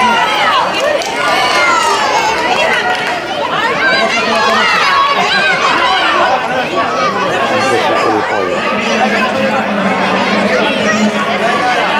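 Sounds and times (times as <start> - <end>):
crowd babble: 0.0 - 11.9.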